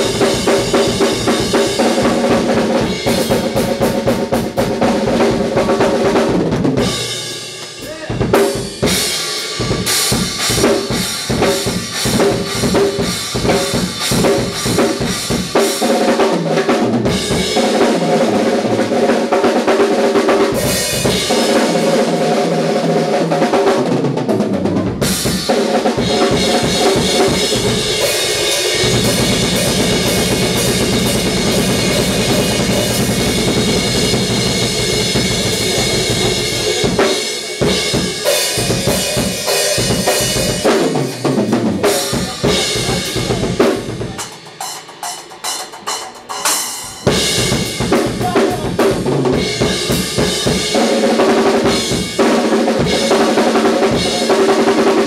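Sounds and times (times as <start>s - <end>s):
live rock band playing: 0.0s - 23.8s, 24.4s - 55.0s
drum kit hits: 0.0s - 55.0s.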